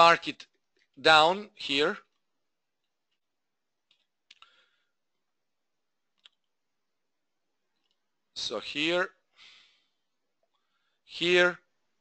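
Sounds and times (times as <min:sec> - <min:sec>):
computer mouse clicks: 0:06.2 - 0:06.5.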